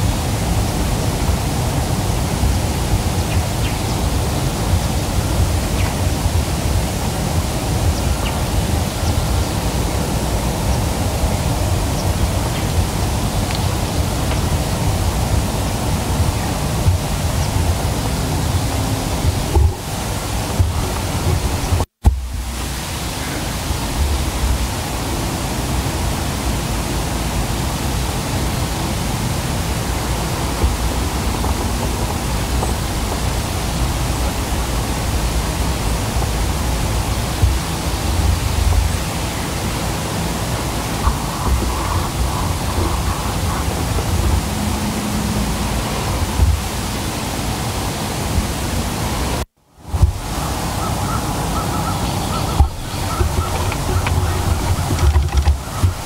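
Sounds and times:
rushing wind: 0:00.0 - 0:56.0.

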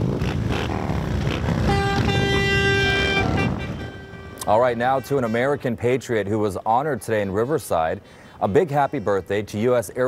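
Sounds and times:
motorcycle engines passing: 0:00.0 - 0:06.2
horn steady note: 0:01.3 - 0:06.1.

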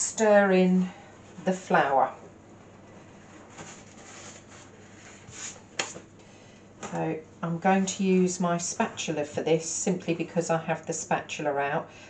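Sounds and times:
paper rustling: 0:03.1 - 0:06.1.

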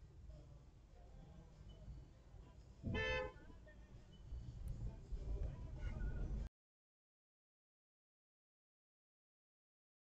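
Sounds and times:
road noise rumble: 0:00.0 - 0:06.5
car horn toot: 0:02.9 - 0:03.4.

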